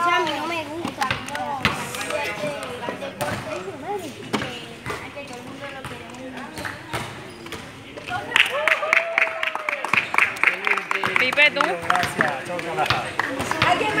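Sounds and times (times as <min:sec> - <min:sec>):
children chattering: 0:00.0 - 0:06.6
group clapping rhythmically: 0:08.3 - 0:14.0.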